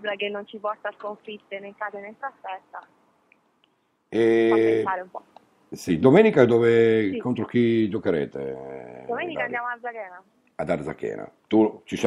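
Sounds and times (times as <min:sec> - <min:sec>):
woman speaking over telephone: 0:00.0 - 0:02.9, 0:04.9 - 0:05.3, 0:09.1 - 0:10.2.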